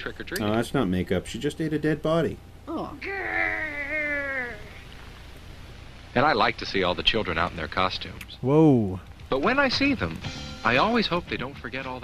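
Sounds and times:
low background hiss: 0:00.0 - 0:12.0
person saying ohhh: 0:02.7 - 0:04.8.

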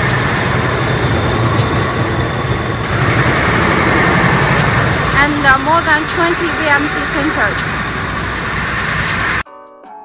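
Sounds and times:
machining hall noise with low rumble: 0:00.0 - 0:09.4
music with held notes and ticks: 0:07.6 - 0:10.0.

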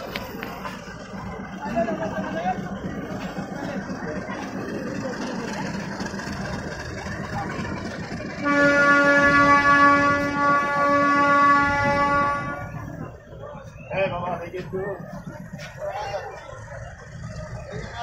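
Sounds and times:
moving train rumble: 0:00.0 - 0:18.0
locomotive horn blast: 0:08.2 - 0:13.1.

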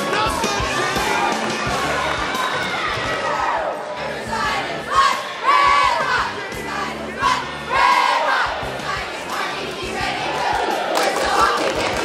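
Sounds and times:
crowd in gymnasium: 0:00.0 - 0:12.0
cheerleaders shouting a chant: 0:00.2 - 0:12.0.

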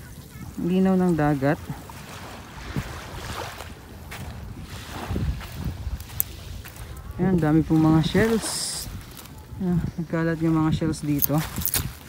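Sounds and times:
waves lapping on shore: 0:00.0 - 0:12.0
wind buffeting microphone: 0:00.0 - 0:12.0.

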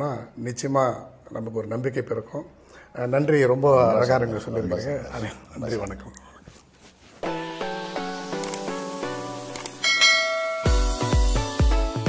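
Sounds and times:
bell-like notification chime: 0:09.8 - 0:11.0
electronic music with deep bass beat: 0:10.0 - 0:12.0.

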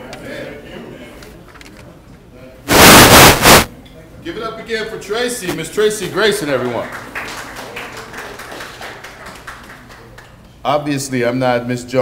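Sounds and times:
loud burst of noise: 0:02.7 - 0:03.7.

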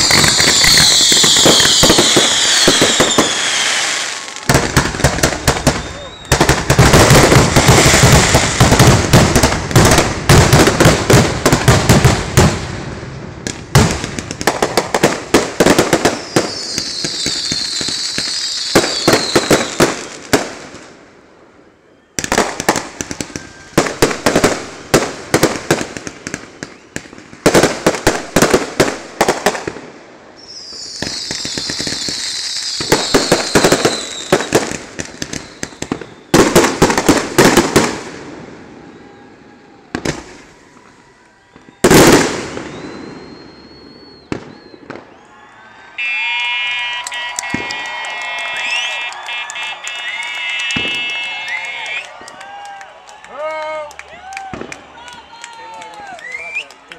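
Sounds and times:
fireworks hissing crackle: 0:00.0 - 0:12.0, 0:13.5 - 0:20.7, 0:30.3 - 0:38.3
fireworks bangs and pops: 0:00.0 - 0:21.0, 0:22.2 - 0:38.6, 0:39.9 - 0:45.2, 0:46.2 - 0:52.4, 0:54.4 - 0:54.9.

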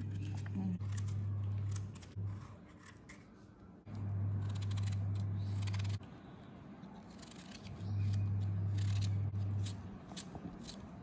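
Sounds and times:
loud steady low hum: 0:03.9 - 0:06.0.

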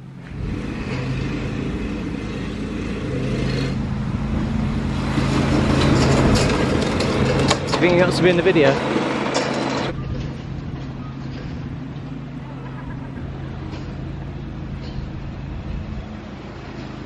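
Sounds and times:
low motor hum: 0:00.0 - 0:17.0
voices: 0:07.5 - 0:15.1.

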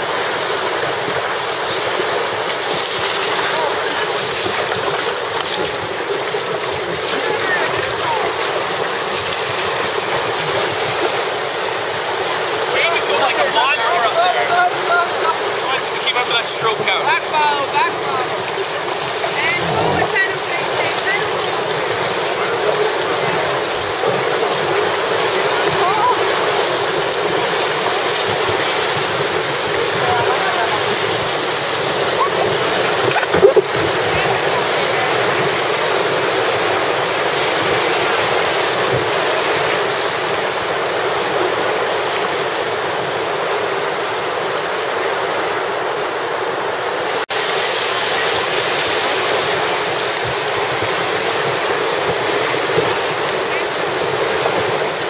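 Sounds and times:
whitewater rapids rushing: 0:00.0 - 0:55.0.

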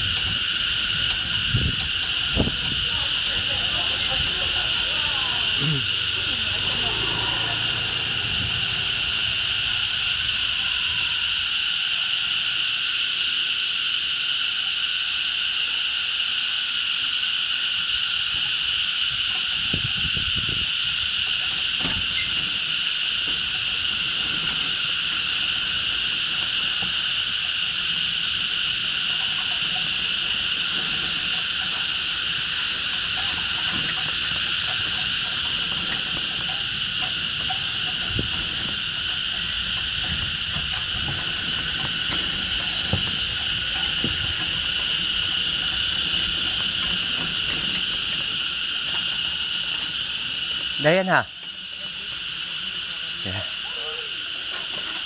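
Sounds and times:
insects droning: 0:00.0 - 0:55.0.

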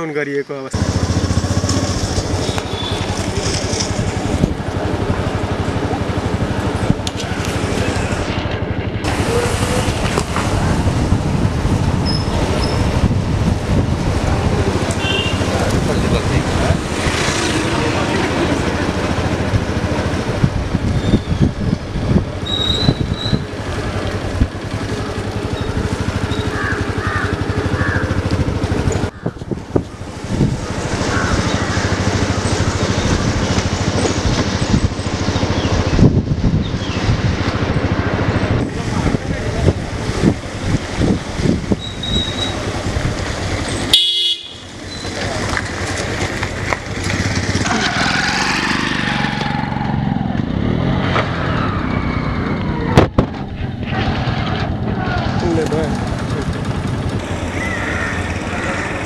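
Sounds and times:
vehicle engine running: 0:00.7 - 0:51.0, 0:52.7 - 0:59.0
wind buffeting microphone: 0:09.1 - 0:17.2, 0:18.8 - 0:25.5, 0:27.4 - 0:43.7
car horn toots: 0:15.0 - 0:15.4, 0:43.9 - 0:44.7.

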